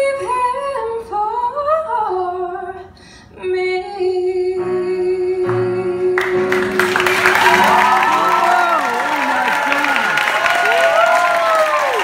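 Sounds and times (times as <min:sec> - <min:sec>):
woman singing into microphone: 0:00.0 - 0:06.7
audience applause: 0:06.5 - 0:12.0.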